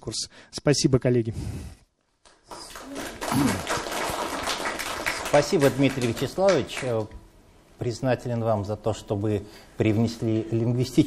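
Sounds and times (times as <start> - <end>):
audience applauding: 2.3 - 7.1
short vocal sound: 3.3 - 3.7.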